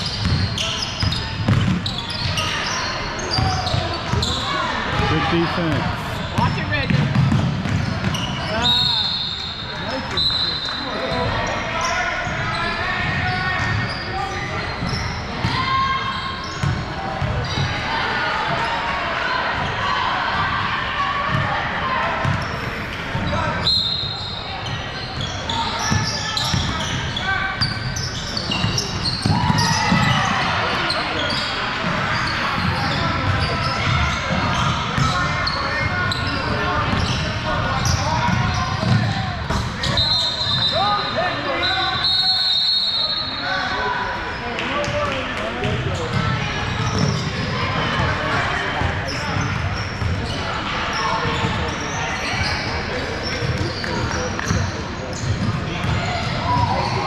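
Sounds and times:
basketball bouncing on hardwood: 0:06.9 - 0:08.2.

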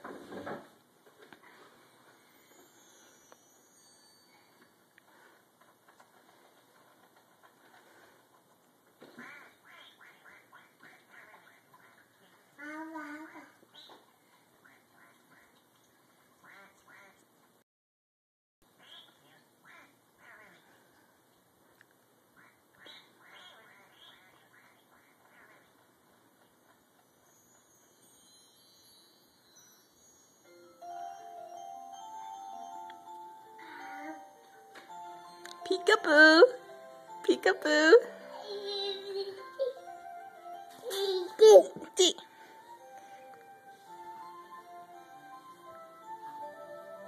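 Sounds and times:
children's television music: 0:01.2 - 0:08.6, 0:09.2 - 0:15.7, 0:22.8 - 0:47.0
faint duck quacking: 0:09.0 - 0:13.9, 0:14.6 - 0:15.6, 0:16.4 - 0:17.2, 0:18.8 - 0:20.8, 0:22.4 - 0:25.8.

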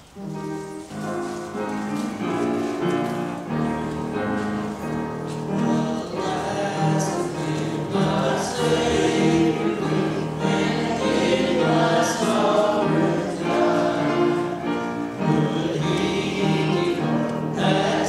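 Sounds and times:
congregation singing a hymn: 0:00.2 - 0:18.0.

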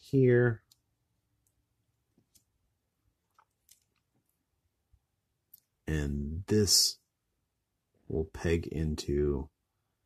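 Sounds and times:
faint clicks of plastic parts: 0:00.6 - 0:02.6, 0:03.2 - 0:04.5, 0:05.4 - 0:05.8.

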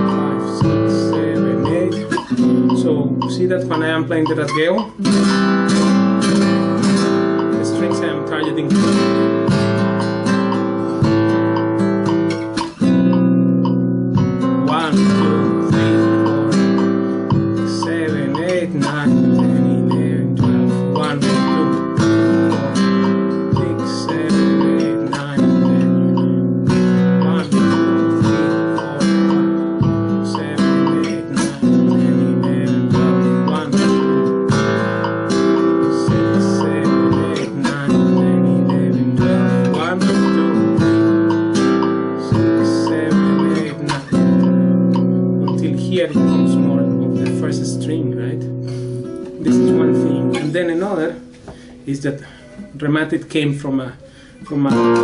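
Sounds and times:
flamenco guitar strumming: 0:00.0 - 0:55.0.

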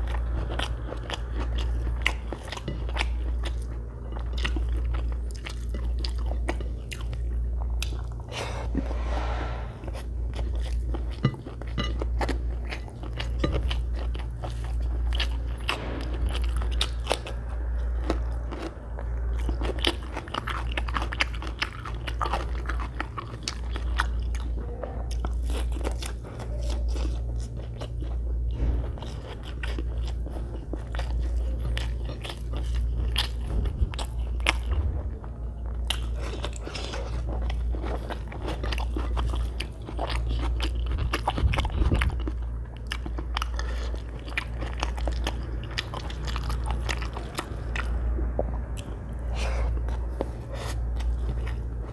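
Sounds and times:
person chewing: 0:00.0 - 0:51.9
steady low hum: 0:00.0 - 0:51.9.

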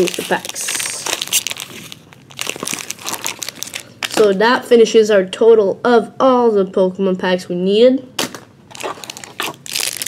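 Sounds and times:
foil wrappers crinkling: 0:00.0 - 0:04.4, 0:08.7 - 0:10.0.

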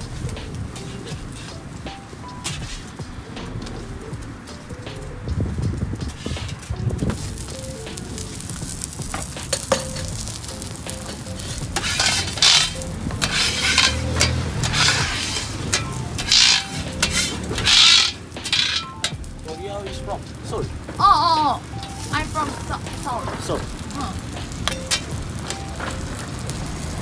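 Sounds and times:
burger sizzling on a griddle: 0:00.0 - 0:27.0
metal spatula scraping: 0:00.8 - 0:01.8, 0:02.4 - 0:02.9, 0:06.1 - 0:06.7, 0:11.0 - 0:19.2.

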